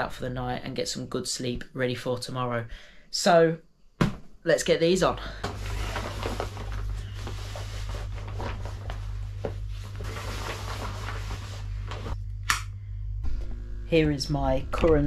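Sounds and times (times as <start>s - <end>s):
steady low hum: 4.8s - 15.0s
nylon sleeves rustling: 5.4s - 12.2s.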